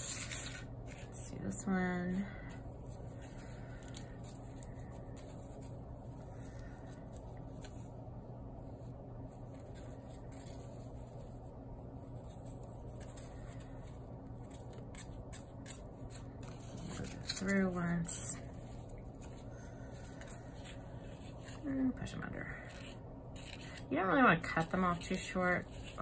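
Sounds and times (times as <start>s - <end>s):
steady low hum: 0.0s - 26.0s
yarn scratching and rustling: 0.0s - 26.0s.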